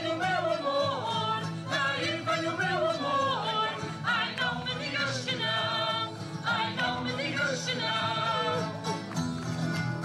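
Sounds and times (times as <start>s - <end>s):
voices singing: 0.0s - 8.9s
strummed guitars: 0.0s - 10.0s.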